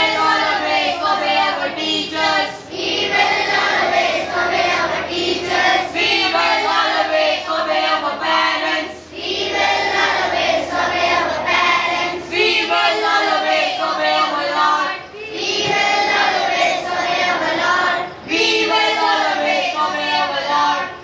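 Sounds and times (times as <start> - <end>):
children's voices in unison: 0.0 - 21.0.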